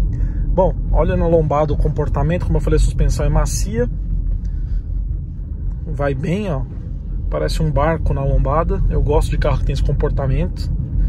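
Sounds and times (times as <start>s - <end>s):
road and engine rumble in car cabin: 0.0s - 11.0s.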